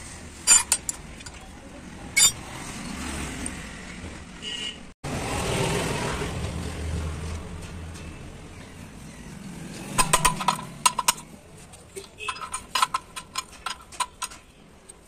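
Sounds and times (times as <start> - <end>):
spanner clinking on metal: 0.5 - 1.5, 10.0 - 15.0.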